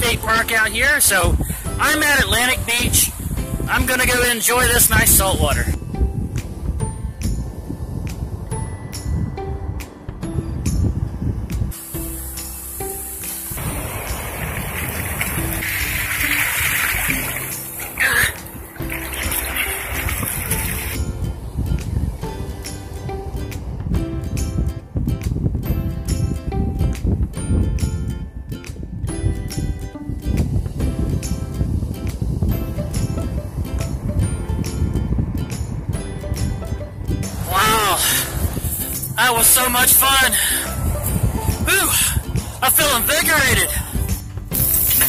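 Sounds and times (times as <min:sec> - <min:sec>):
background music with a beat: 0:05.8 - 0:45.0
seawater splashing: 0:13.3 - 0:21.0.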